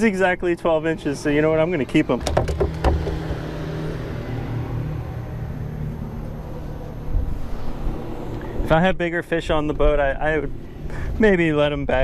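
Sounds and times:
sharp knocks and rattles: 0:02.2 - 0:03.8
low hum: 0:02.6 - 0:08.6.

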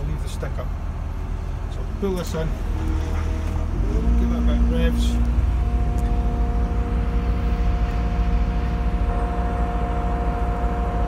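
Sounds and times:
diesel engine rumble: 0:00.0 - 0:11.0
two-note hydraulic whine: 0:02.2 - 0:11.0.

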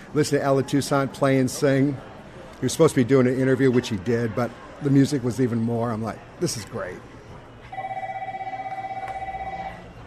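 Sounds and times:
electronic phone ring: 0:07.7 - 0:09.9.

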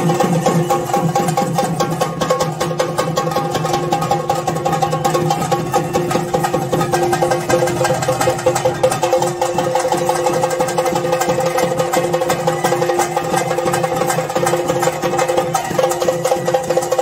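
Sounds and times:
fast drumming: 0:00.0 - 0:17.0.

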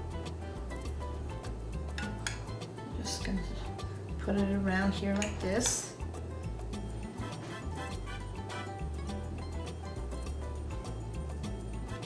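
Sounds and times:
background music with bass line: 0:00.0 - 0:12.0
fork clinking on ceramic dish: 0:02.0 - 0:02.5.

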